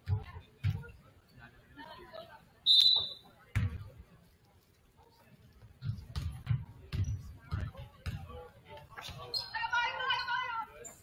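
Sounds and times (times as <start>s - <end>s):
referee whistle blast: 2.7s - 3.3s
basketball bouncing on wooden floor: 5.8s - 8.3s.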